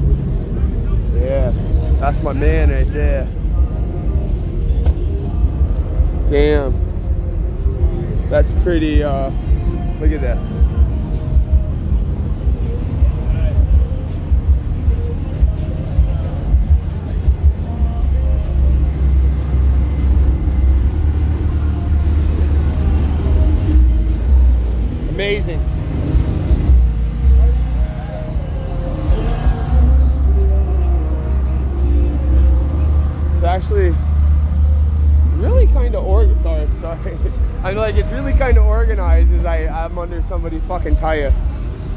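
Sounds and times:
deep sub-bass music: 0:00.0 - 0:41.9
people's voices: 0:00.0 - 0:41.9.

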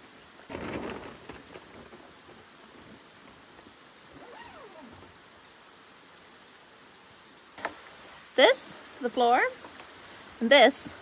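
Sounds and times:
faint rustling: 0:00.0 - 0:05.4.

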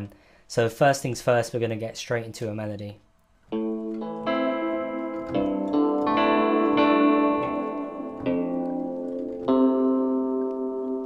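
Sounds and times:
plucked synth melody: 0:03.5 - 0:11.0.

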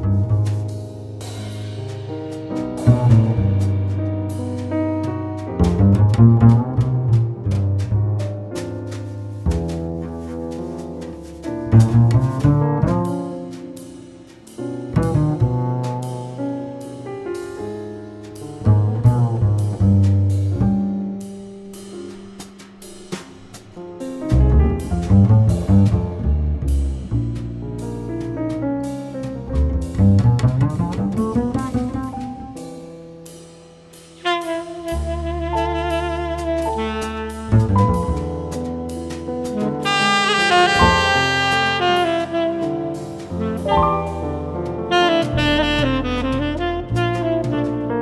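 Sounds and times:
acoustic jazz with double bass: 0:00.0 - 0:48.0.

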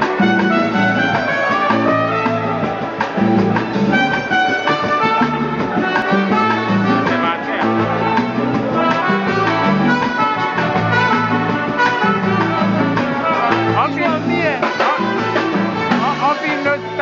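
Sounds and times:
bass line: 0:00.0 - 0:17.0
brass horns holding notes: 0:00.0 - 0:17.0
percussion hits: 0:00.0 - 0:17.0.

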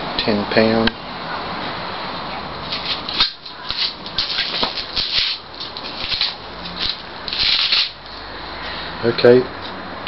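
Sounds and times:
brief rustling rubbing: 0:02.6 - 0:08.0.

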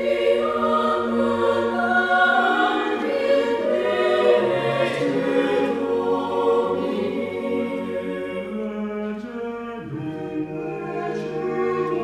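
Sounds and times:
choir singing chords: 0:00.0 - 0:12.0.

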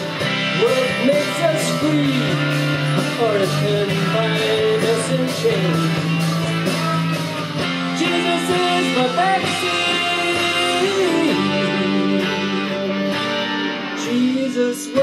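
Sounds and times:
rock music with electric guitar: 0:00.0 - 0:15.0.

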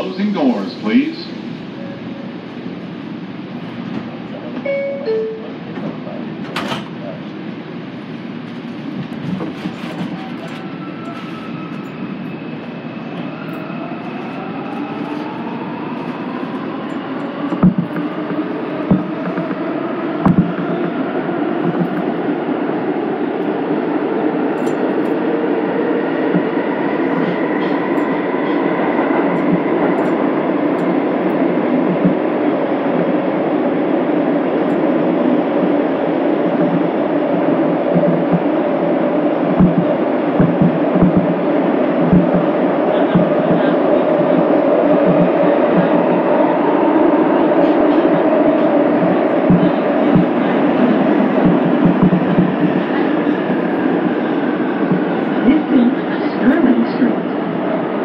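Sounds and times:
train doors closing: 0:03.6 - 0:58.0.

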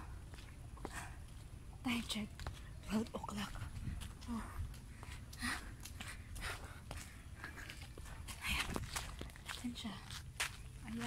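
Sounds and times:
low microphone rumble: 0:00.0 - 0:11.0
person breathing heavily: 0:03.9 - 0:09.2.

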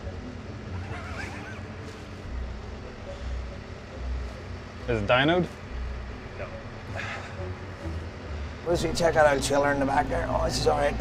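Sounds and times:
diesel engine rumble: 0:00.0 - 0:11.0.

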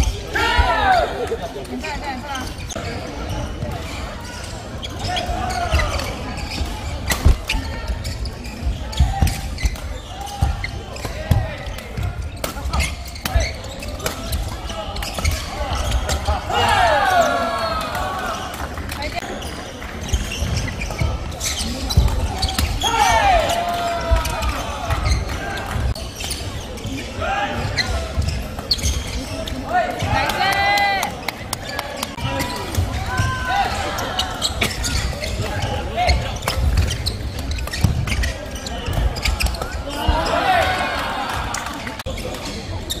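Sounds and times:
voices chattering: 0:00.0 - 0:43.0
shoes squealing on court floor: 0:01.7 - 0:30.4, 0:31.1 - 0:43.0.

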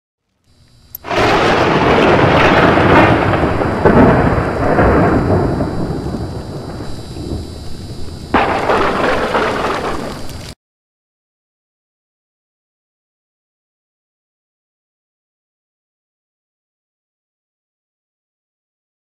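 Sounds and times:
loud noisy sound effect hit: 0:01.0 - 0:10.5.

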